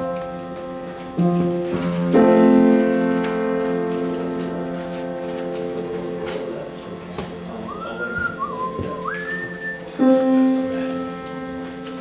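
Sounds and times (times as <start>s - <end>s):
faint band music: 0.0s - 12.0s
person whistling: 7.7s - 10.0s.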